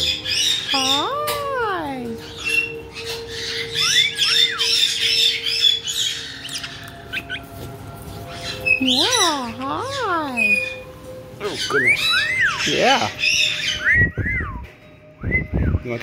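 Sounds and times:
parrots chattering and squawking: 0.0s - 14.3s
parrot whistles: 2.4s - 7.6s, 11.6s - 15.9s.

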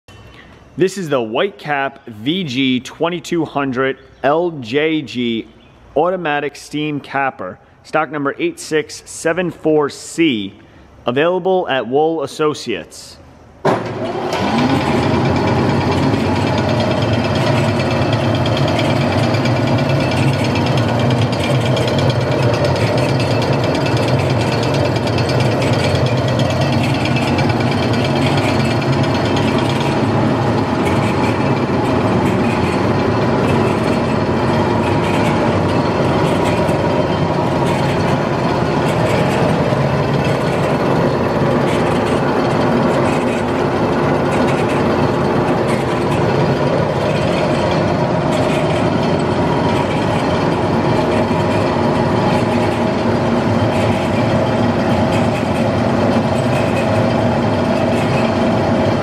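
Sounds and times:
capping machine running: 13.6s - 59.0s.

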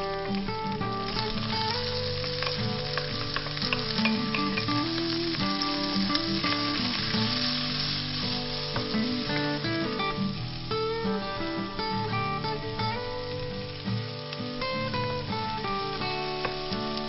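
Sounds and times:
acoustic guitar music: 0.0s - 17.0s
vegetables sizzling in hot oil: 0.0s - 17.0s.

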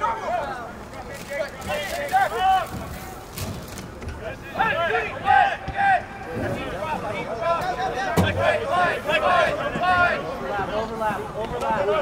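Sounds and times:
faint crowd chatter: 0.0s - 12.0s.

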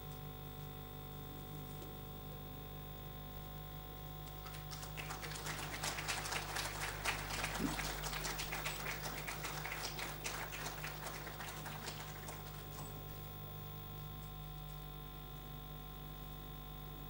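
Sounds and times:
light applause: 4.2s - 13.4s.

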